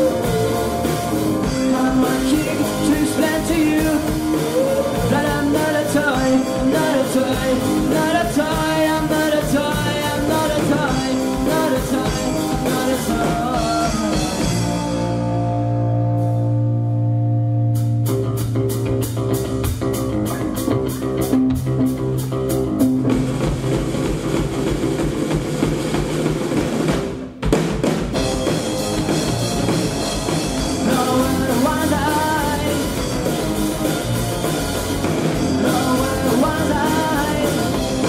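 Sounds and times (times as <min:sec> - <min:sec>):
steady drum beat: 0:00.0 - 0:15.6, 0:17.8 - 0:38.0
electric guitar: 0:00.0 - 0:27.4, 0:28.0 - 0:38.0.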